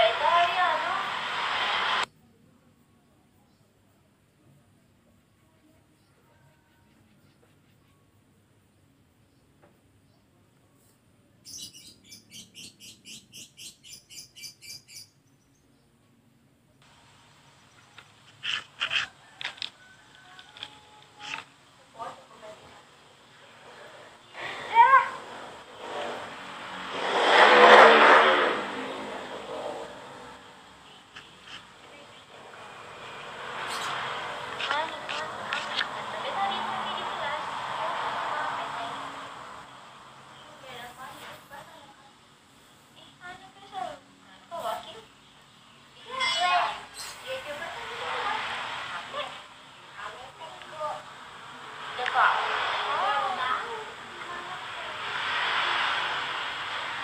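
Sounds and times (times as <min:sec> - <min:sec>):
motor vehicle passing: 0:00.0 - 0:02.1, 0:16.8 - 0:45.1, 0:45.8 - 0:57.0
static hiss: 0:00.0 - 0:02.1, 0:16.8 - 0:57.0.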